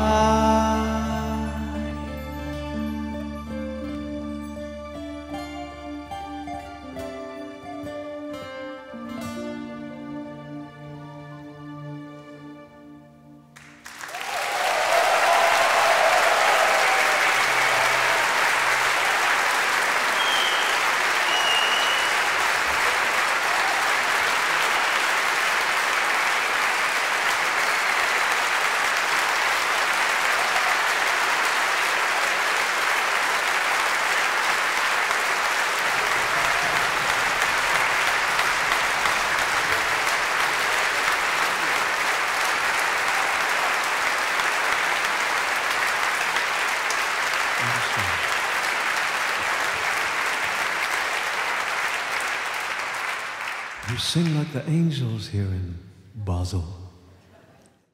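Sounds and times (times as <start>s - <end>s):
audience applauding: 13.6s - 55.2s.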